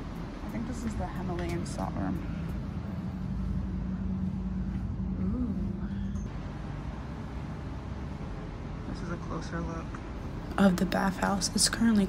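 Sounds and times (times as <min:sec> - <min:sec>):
low mechanical hum: 0:00.0 - 0:12.0
low rumble: 0:00.0 - 0:12.0.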